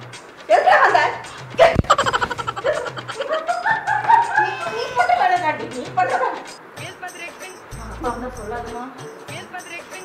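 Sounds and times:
chicken clucking: 1.7 - 5.0
chicken call rising in pitch: 1.9 - 5.2.

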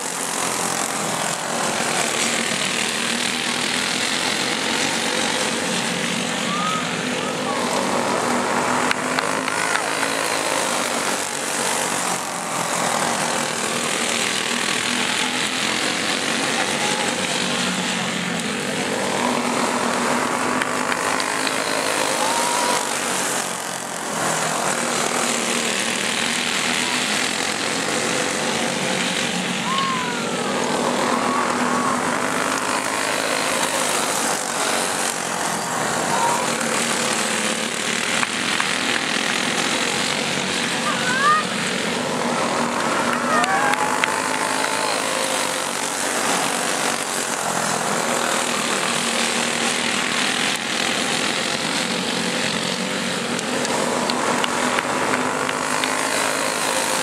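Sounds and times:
go-kart engines racing: 0.0 - 57.0.

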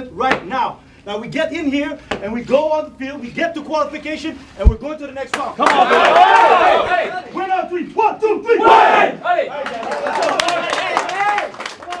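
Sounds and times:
men shouting together: 5.6 - 7.4, 8.0 - 11.4
sharp claps: 9.6 - 12.0.

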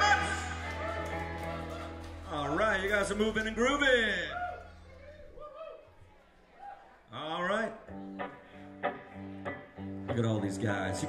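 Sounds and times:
guitar strumming chords: 7.9 - 11.0.

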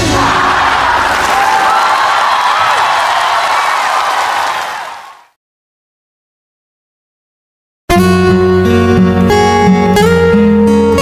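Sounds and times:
audience applauding and cheering: 0.0 - 5.4.

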